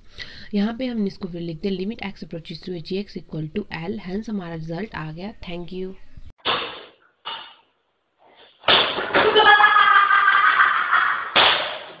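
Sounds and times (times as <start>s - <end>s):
sharp impact: 6.4s - 7.6s.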